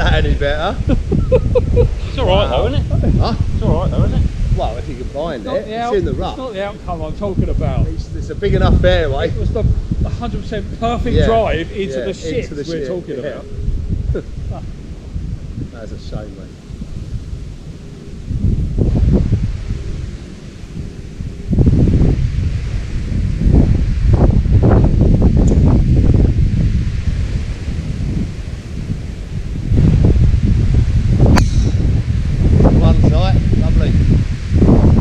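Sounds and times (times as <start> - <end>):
wind buffeting microphone: 0.0 - 35.0
golf driver striking ball: 31.3 - 32.0.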